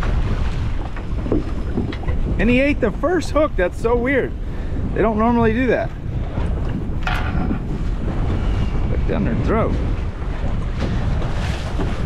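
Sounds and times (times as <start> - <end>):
water washing around boat: 0.0 - 12.0
wind buffeting microphone: 0.0 - 12.0.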